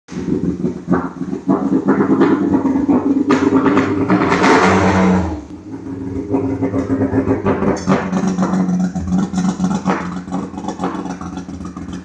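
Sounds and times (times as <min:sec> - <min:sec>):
car engine revving unevenly: 0:00.1 - 0:12.0.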